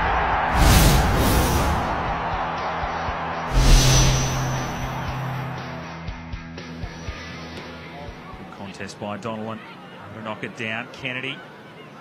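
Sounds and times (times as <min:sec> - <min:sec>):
whoosh sound effects: 0:00.5 - 0:02.2, 0:03.5 - 0:05.4.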